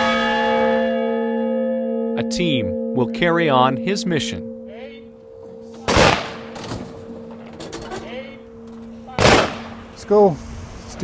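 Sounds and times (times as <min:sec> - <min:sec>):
rifle shot crack: 0:05.9 - 0:06.6, 0:09.2 - 0:09.8.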